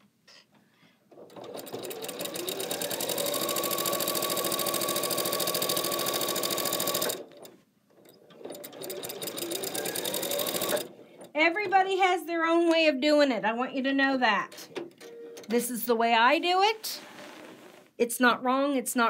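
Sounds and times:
electric sewing machine stitching: 0:01.2 - 0:07.5, 0:08.4 - 0:10.9.

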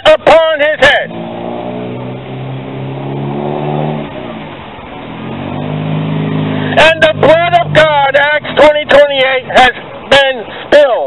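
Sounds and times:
vehicle engine running: 0:00.6 - 0:10.6.

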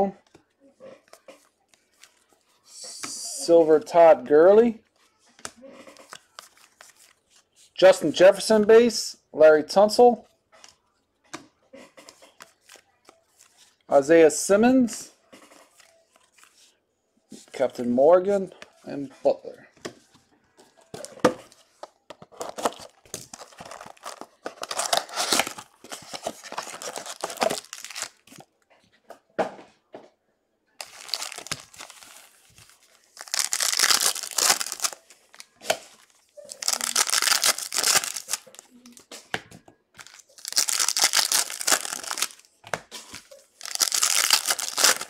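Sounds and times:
wrappers tearing and crinkling: 0:22.3 - 0:28.5, 0:30.8 - 0:38.7, 0:40.0 - 0:42.5, 0:43.1 - 0:45.0.

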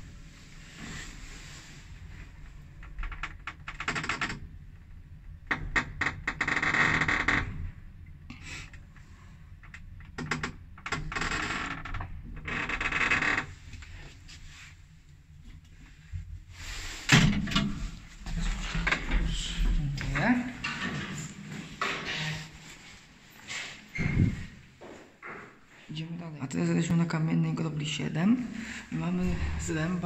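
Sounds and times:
clothing rustle: 0:17.7 - 0:25.9
footsteps: 0:17.8 - 0:25.9.

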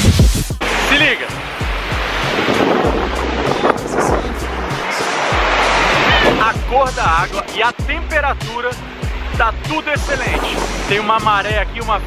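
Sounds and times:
surf breaking on beach: 0:00.6 - 0:11.6.

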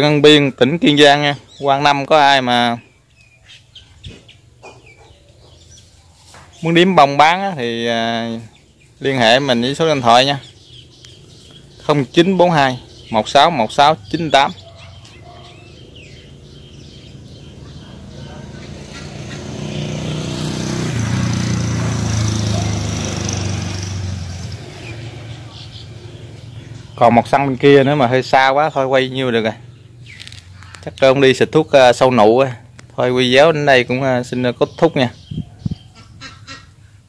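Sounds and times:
quiet bird calls: 0:00.0 - 0:21.1, 0:22.1 - 0:37.0
engine passing by: 0:03.4 - 0:34.2.

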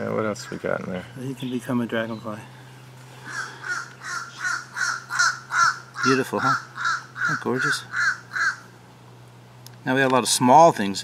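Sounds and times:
bird calling: 0:00.0 - 0:08.9
steady low hum: 0:00.0 - 0:11.0.

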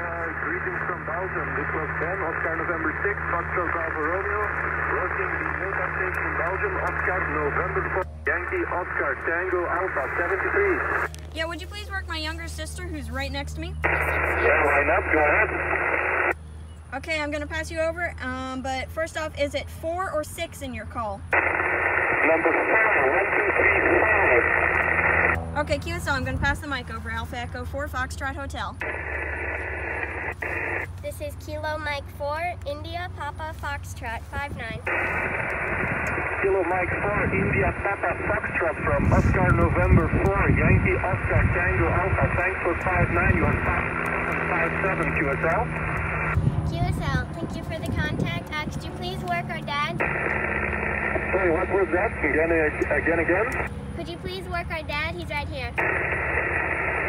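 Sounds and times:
thin narrow-band radio speech: 0:00.0 - 0:11.5, 0:13.7 - 0:16.4, 0:21.3 - 0:26.6, 0:28.8 - 0:57.0
steady low hum: 0:00.0 - 0:57.0.

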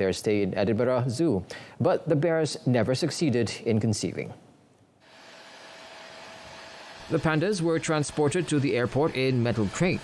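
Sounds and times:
rushing jet machine noise: 0:05.1 - 0:10.0.

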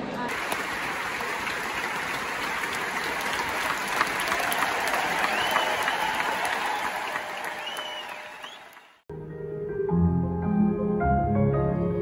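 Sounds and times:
audience applauding: 0:00.3 - 0:09.1.

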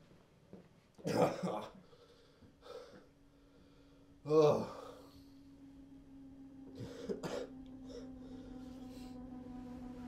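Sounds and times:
man coughing in pain: 0:01.0 - 0:01.8, 0:07.0 - 0:07.6
low musical drone: 0:01.8 - 0:10.0.

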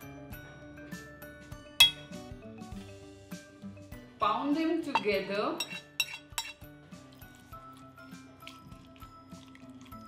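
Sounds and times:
metal tongs clinking on dishes: 0:01.8 - 0:02.1, 0:04.9 - 0:06.7.

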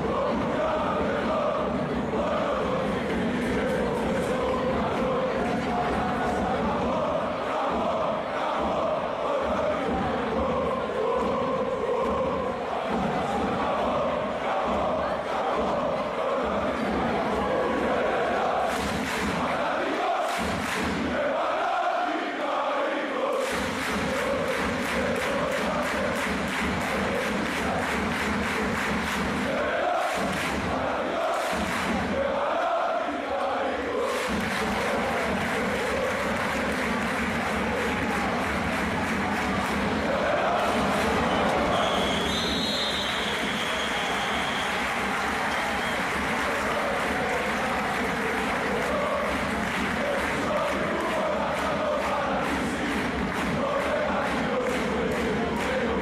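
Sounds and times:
fast claps or drums: 0:00.0 - 0:21.6, 0:23.2 - 0:56.0
crowd chanting: 0:00.0 - 0:56.0.

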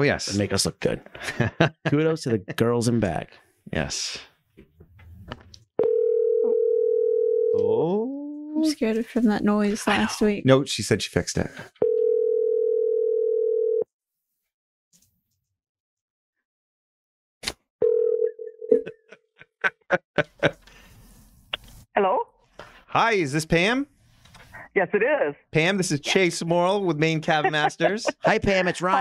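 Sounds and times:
steady telephone tone: 0:05.8 - 0:07.6, 0:11.8 - 0:13.9, 0:17.8 - 0:18.8.

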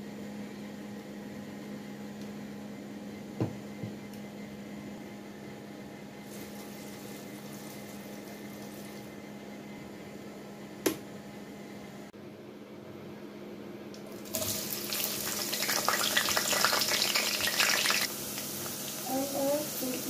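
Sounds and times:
onions sizzling in hot oil: 0:06.3 - 0:09.1, 0:14.2 - 0:20.0.

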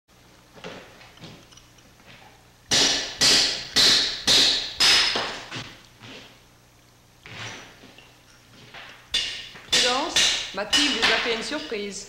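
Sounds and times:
hammer striking chisel on stone: 0:02.7 - 0:05.4, 0:09.1 - 0:11.8.

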